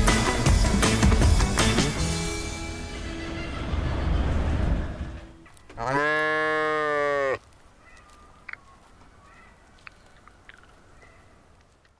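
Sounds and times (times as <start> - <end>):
farm animal calling: 5.6 - 11.4
faint clicks: 7.4 - 11.9.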